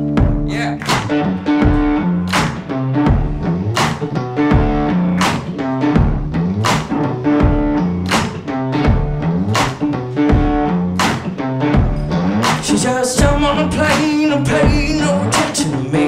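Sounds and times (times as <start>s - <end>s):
electric guitar riff: 0.0s - 16.0s
drum hits: 0.1s - 15.1s.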